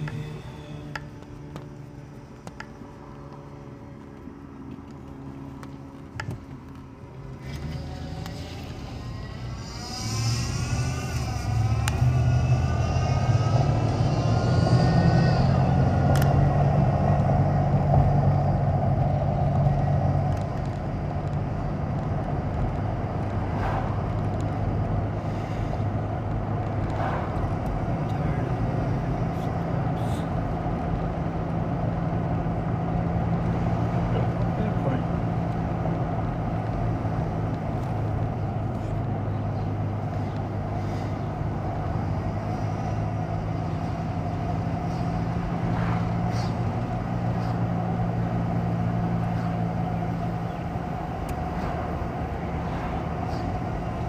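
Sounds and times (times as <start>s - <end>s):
car engine accelerating: 0.0s - 54.0s
engine whine: 0.0s - 54.0s
road noise: 0.0s - 54.0s.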